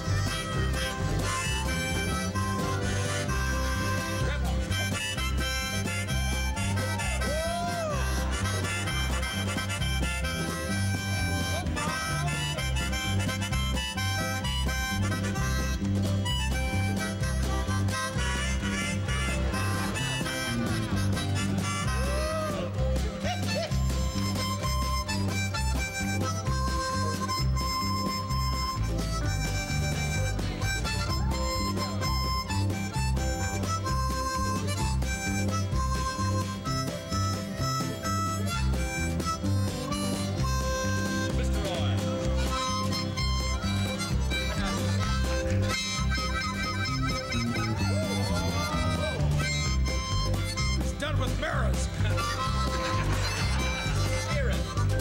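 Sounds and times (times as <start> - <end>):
bass line with steady beat: 0.0 - 55.0
harmonicas playing a tune: 0.0 - 55.0.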